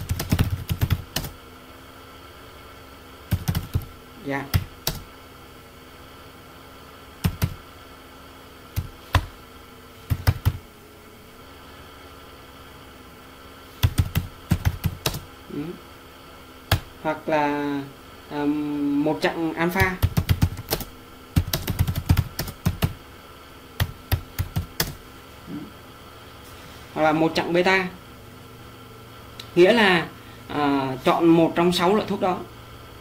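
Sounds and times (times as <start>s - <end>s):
keyboard typing: 0.0s - 1.4s, 3.3s - 3.9s, 4.5s - 5.1s, 7.2s - 7.6s, 8.8s - 9.4s, 10.1s - 10.6s, 13.8s - 15.3s, 16.7s - 16.9s, 19.7s - 23.0s, 23.8s - 25.0s
faint steady hum: 0.0s - 33.0s.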